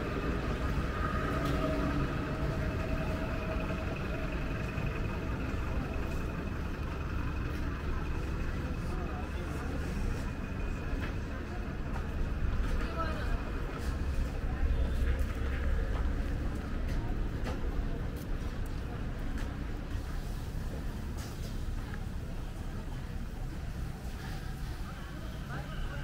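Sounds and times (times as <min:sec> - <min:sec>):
people's voices: 0:00.0 - 0:26.0
traffic engine hum: 0:00.0 - 0:26.0.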